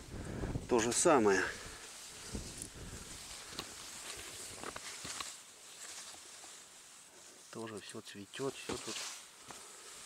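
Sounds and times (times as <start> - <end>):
leaves and stems rustling: 0.0 - 10.0
soft crackles: 0.0 - 10.0.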